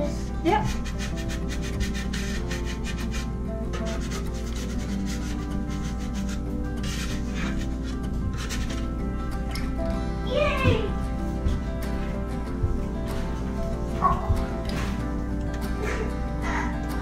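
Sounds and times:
background music: 0.0 - 17.0
spatula scraping griddle: 0.4 - 9.0.

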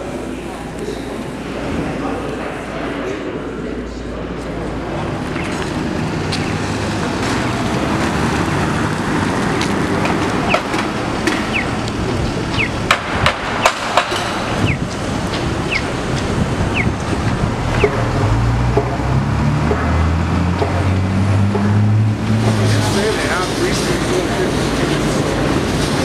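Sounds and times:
traffic rumble: 0.0 - 26.0
sharp knocks or clanks: 10.0 - 11.7, 12.5 - 15.5, 17.7 - 22.6.

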